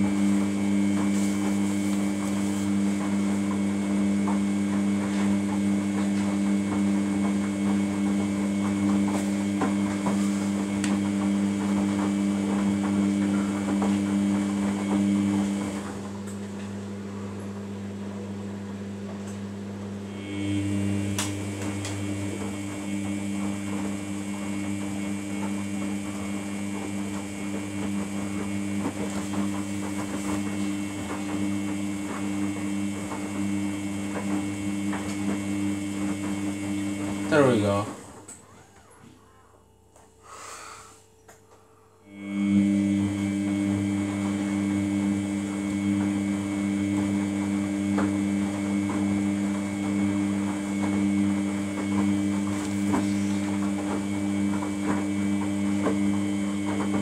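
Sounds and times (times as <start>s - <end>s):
washing machine motor humming: 0.0s - 57.0s.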